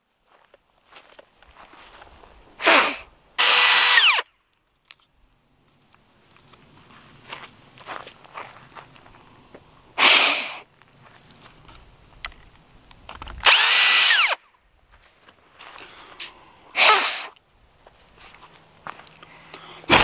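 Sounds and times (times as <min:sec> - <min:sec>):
electric drill boring wood: 0:02.6 - 0:04.2, 0:13.4 - 0:14.4.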